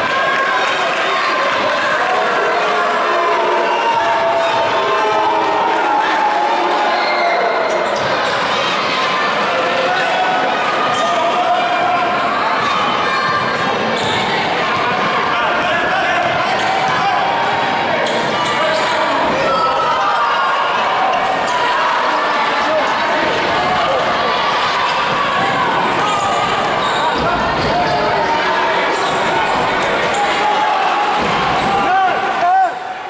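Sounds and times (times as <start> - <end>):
basketball bouncing on court: 16.1 - 17.1.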